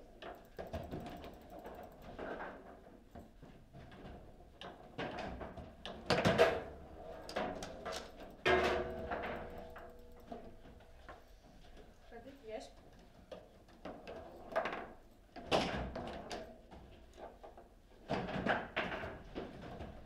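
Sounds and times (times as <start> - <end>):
ringing clatter: 8.4 - 11.0.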